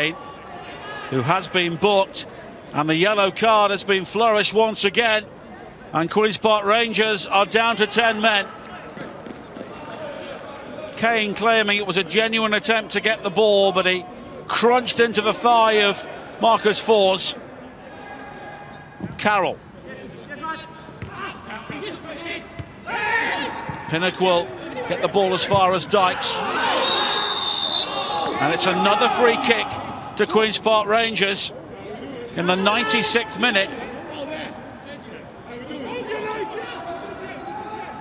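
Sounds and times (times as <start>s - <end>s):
players shouting: 20.3s - 31.4s, 32.0s - 38.0s.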